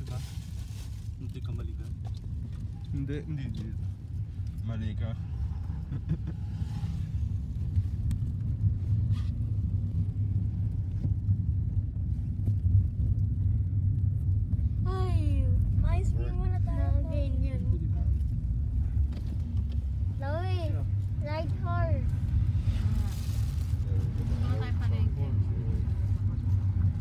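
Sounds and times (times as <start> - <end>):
car engine and tyre rumble: 0.0 - 27.0.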